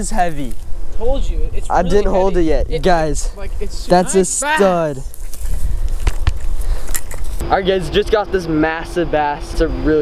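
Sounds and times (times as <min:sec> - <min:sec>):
wind buffeting microphone: 0:00.0 - 0:07.5.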